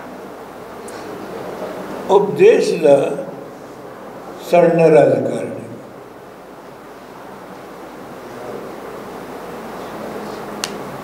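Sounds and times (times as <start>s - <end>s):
steady background hiss: 0.0s - 11.0s.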